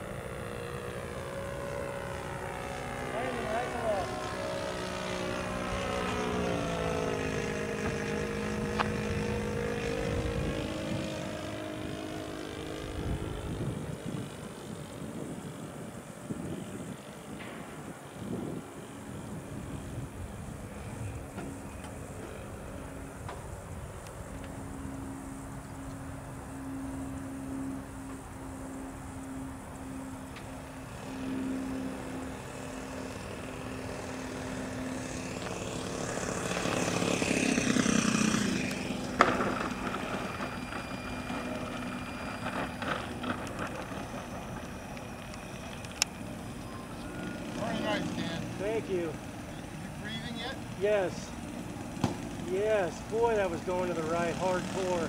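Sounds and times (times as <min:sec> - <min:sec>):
model airplane engine running: 0:00.0 - 0:55.0.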